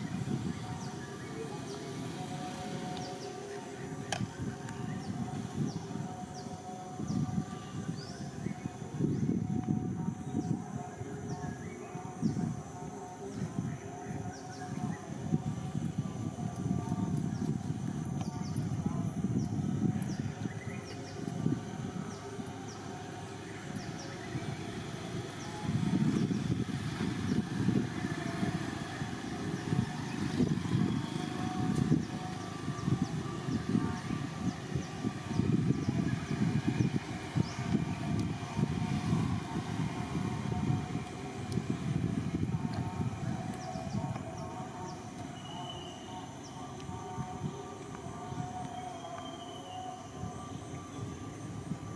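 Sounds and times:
wind buffeting microphone: 0.0s - 49.2s, 49.8s - 51.9s.

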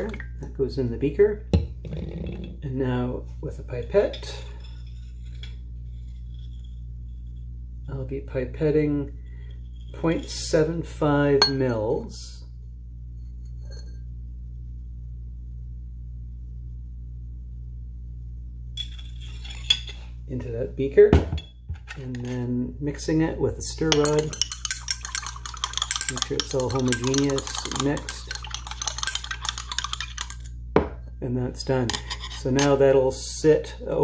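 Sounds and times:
glassware clinking: 11.4s - 11.8s, 18.8s - 20.0s, 21.2s - 21.6s, 23.8s - 31.0s.

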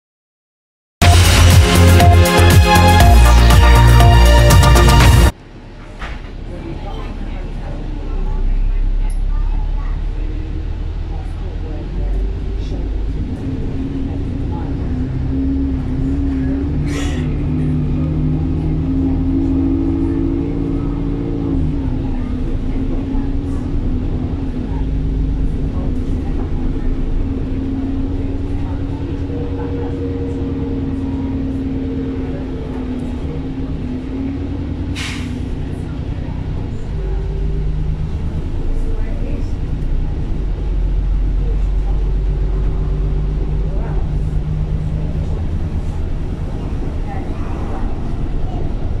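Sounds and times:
bus diesel engine: 1.0s - 49.0s.

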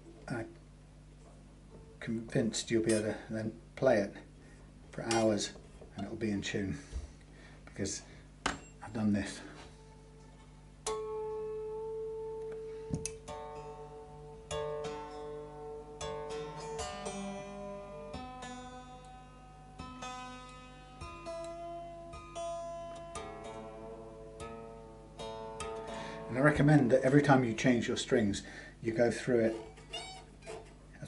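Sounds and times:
electric guitar strings plucked: 10.8s - 28.0s.

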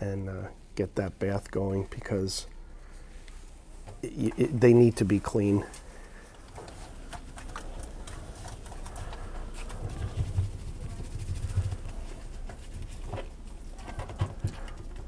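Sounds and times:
hands scrubbing wet fur: 6.8s - 13.1s.

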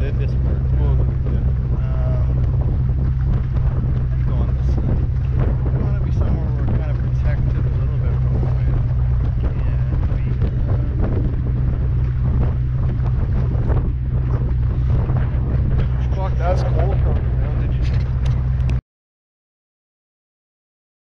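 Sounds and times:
boat engine drone: 0.0s - 18.8s
water rushing past hull: 0.0s - 18.8s
wind buffeting microphone: 0.0s - 18.8s.

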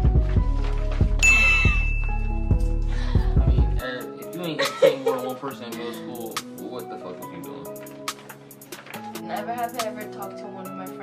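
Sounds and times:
background music with bass beat: 0.0s - 6.6s
bell-like ding: 1.2s - 2.6s.

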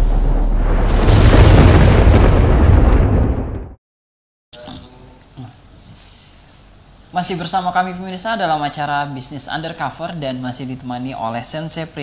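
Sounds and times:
cinematic boom and rumble: 0.0s - 3.8s.

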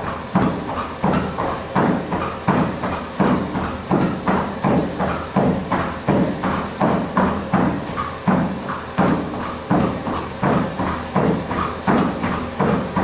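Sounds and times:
horse hooves on treadmill belt: 0.0s - 13.0s
treadmill hiss and whine: 0.0s - 13.0s.

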